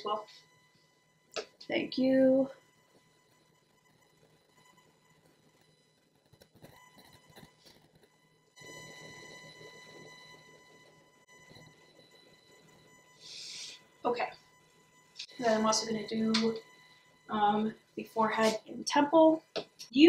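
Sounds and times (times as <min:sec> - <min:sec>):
electrical buzz from microphone: 0:00.0 - 0:20.0.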